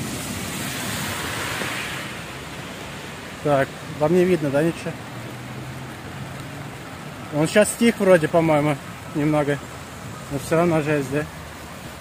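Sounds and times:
rain on an umbrella: 0:00.0 - 0:12.0
rain on wet street: 0:00.0 - 0:12.0.

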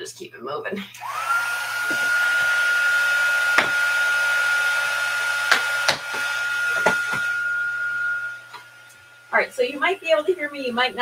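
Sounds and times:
heat tool whining: 0:01.0 - 0:11.0.

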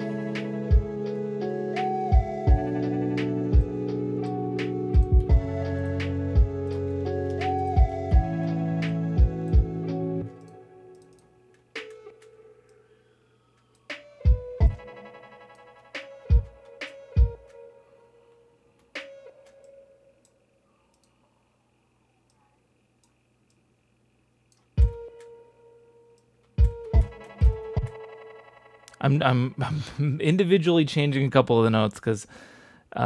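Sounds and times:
breathy wooden flute notes: 0:00.0 - 0:10.3.

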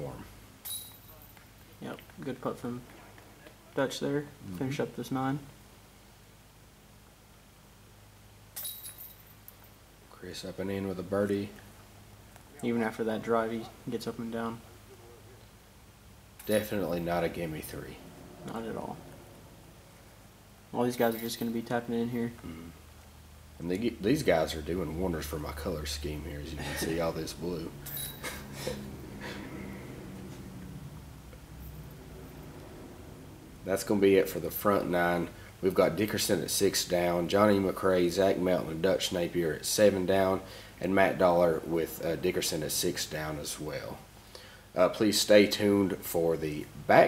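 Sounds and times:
steady low hum: 0:00.0 - 0:47.0
disc hitting basket chains: 0:00.6 - 0:01.4, 0:08.6 - 0:09.4, 0:27.8 - 0:28.4
small clink: 0:00.6 - 0:01.5, 0:08.5 - 0:09.8, 0:27.8 - 0:28.2
man laughing softly: 0:26.4 - 0:27.2, 0:28.2 - 0:30.4.

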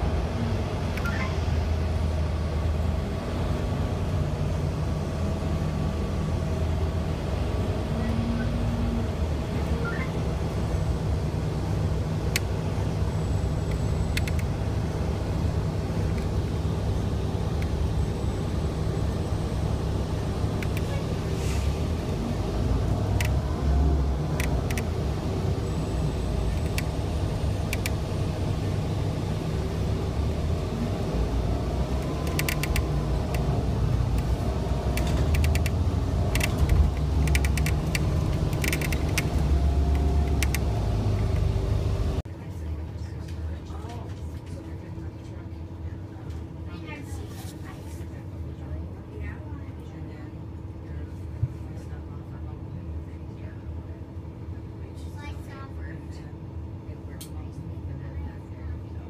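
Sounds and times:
light-rail train rumbling: 0:00.0 - 0:59.0
sharp clicks and rattles: 0:32.0 - 0:34.3, 0:34.9 - 0:41.5.

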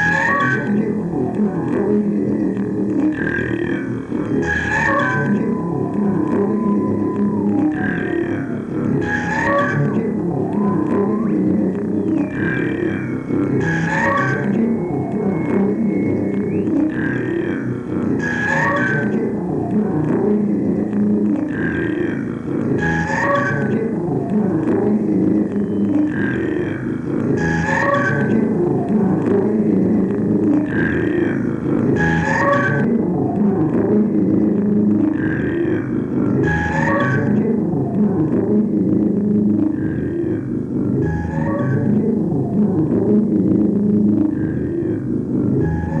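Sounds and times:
low vocal layer: 0:00.0 - 0:46.0
steady whistle tone: 0:04.3 - 0:09.5, 0:11.9 - 0:17.3, 0:25.5 - 0:26.1.

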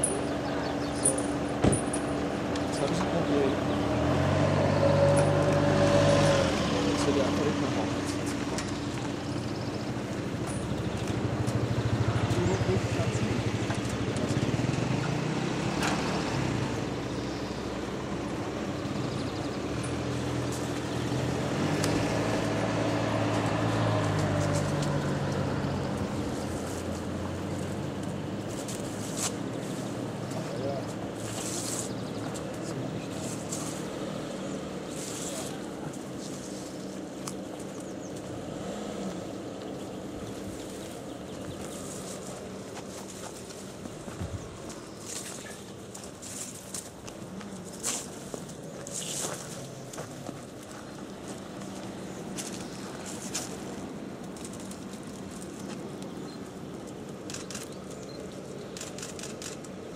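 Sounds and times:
motor vehicle humming: 0:00.0 - 0:59.9.

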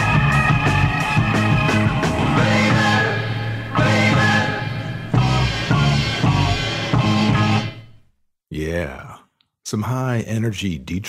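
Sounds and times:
drawn-out vocal sound: 0:02.1 - 0:06.8
person talking: 0:08.5 - 0:11.0.

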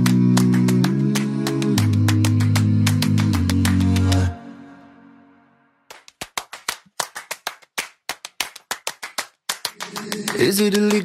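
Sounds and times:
rhythmic hand claps: 0:00.0 - 0:04.4, 0:05.9 - 0:11.0
people singing: 0:00.0 - 0:04.7, 0:09.8 - 0:11.0.

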